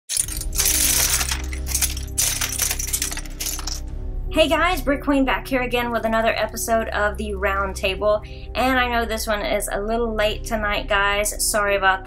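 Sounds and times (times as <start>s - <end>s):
plastic bricks clattering: 0.1s - 3.8s
music with low bass: 0.2s - 12.0s.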